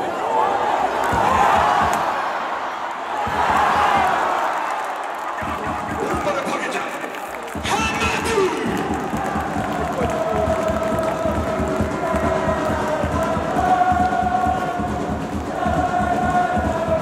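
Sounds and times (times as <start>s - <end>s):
football supporters chanting: 0.0s - 17.0s
steady low beat: 5.4s - 6.4s.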